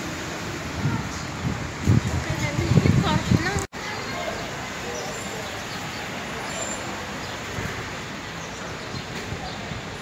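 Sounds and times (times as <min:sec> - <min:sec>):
traffic noise: 0:00.0 - 0:10.0
people talking: 0:02.1 - 0:07.2.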